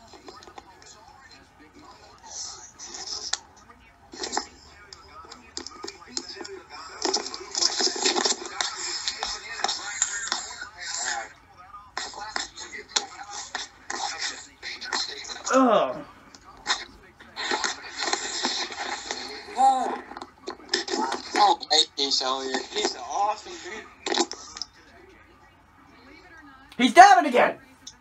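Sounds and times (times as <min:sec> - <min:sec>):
television music: 0:00.0 - 0:28.0
voices on television: 0:00.0 - 0:28.0.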